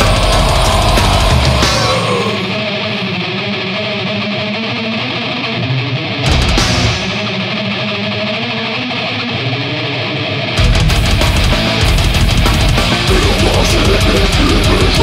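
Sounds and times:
death metal band playing: 0:00.0 - 0:15.0
distorted electric guitar riff: 0:00.0 - 0:15.0.

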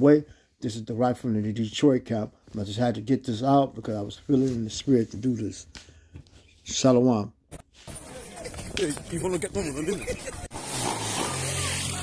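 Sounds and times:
noisy street din: 0:07.5 - 0:12.0
voices calling out: 0:07.9 - 0:12.0
person laughing: 0:08.2 - 0:12.0.

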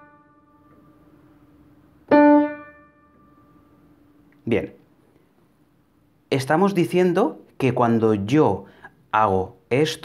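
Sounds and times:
piano note struck: 0:02.1 - 0:03.8.

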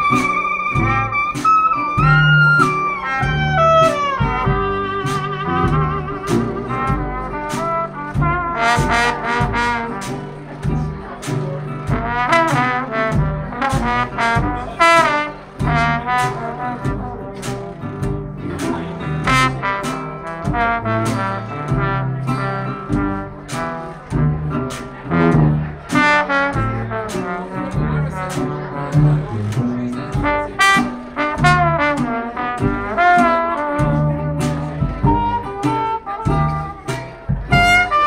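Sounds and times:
clarinet: 0:00.0 - 0:11.2, 0:11.9 - 0:38.0
low bass: 0:00.0 - 0:38.0
steady drum beat: 0:00.0 - 0:38.0
trombone: 0:00.0 - 0:38.0
trumpet: 0:00.0 - 0:38.0.

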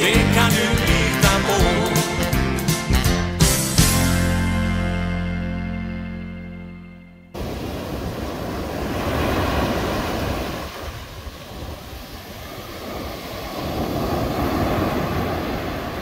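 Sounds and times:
ocean waves washing ashore: 0:07.4 - 0:16.0.

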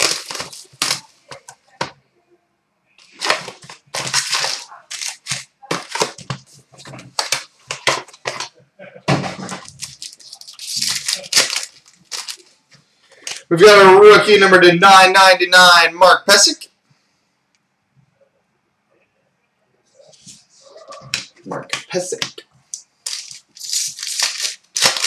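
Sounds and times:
wrappers crinkling and tearing: 0:00.0 - 0:01.5, 0:03.0 - 0:08.5, 0:09.4 - 0:13.5, 0:22.8 - 0:25.0
cards shuffled: 0:00.0 - 0:01.6, 0:03.0 - 0:08.5, 0:23.0 - 0:25.0.

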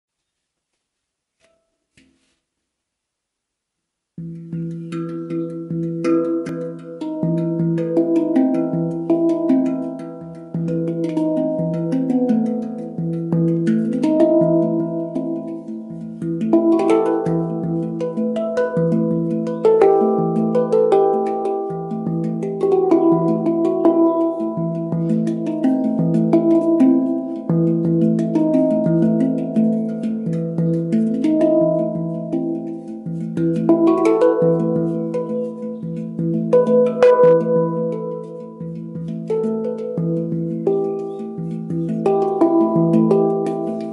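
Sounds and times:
handpan played with hands: 0:04.2 - 0:43.9.

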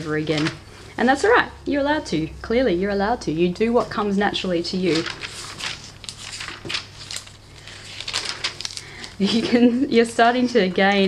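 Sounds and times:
pages rustling: 0:04.7 - 0:11.0.

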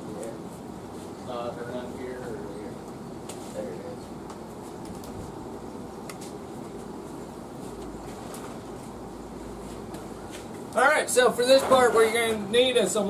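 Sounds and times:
steady low background noise: 0:00.0 - 0:13.0.

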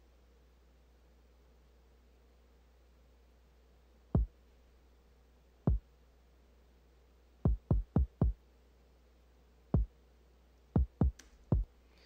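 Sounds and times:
deep kick drum hits: 0:07.5 - 0:08.4.

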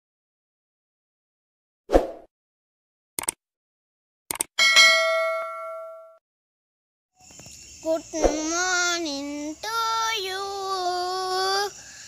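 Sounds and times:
click sound effect: 0:04.3 - 0:04.5
notification bell ding: 0:04.6 - 0:06.2.

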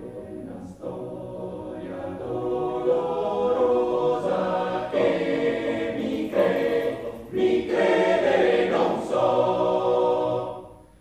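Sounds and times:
male choir singing a cappella: 0:00.0 - 0:11.0.

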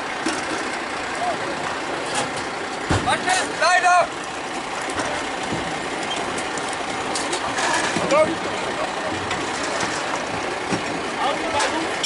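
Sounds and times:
pump engine clattering: 0:00.0 - 0:12.0.

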